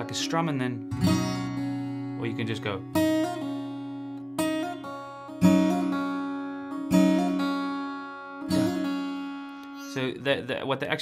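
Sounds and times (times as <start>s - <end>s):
fingerpicked acoustic guitar: 0.0s - 10.4s.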